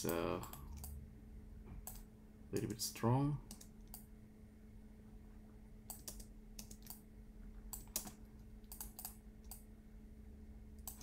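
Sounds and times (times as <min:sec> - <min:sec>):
computer keyboard keystrokes: 0:00.0 - 0:01.0, 0:01.8 - 0:02.8, 0:03.5 - 0:04.0, 0:05.9 - 0:07.0, 0:07.7 - 0:09.6, 0:10.8 - 0:11.0
faint steady hum: 0:00.0 - 0:11.0.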